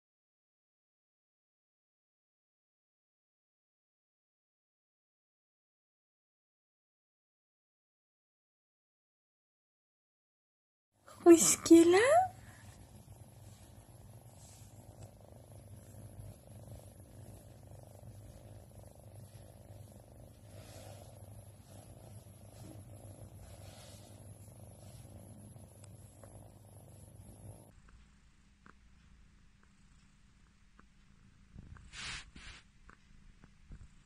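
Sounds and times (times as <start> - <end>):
cat purring softly: 11.0 - 34.0.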